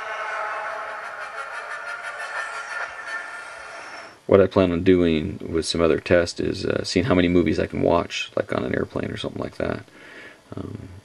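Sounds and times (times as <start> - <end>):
film soundtrack through small speaker: 0.0 - 4.4.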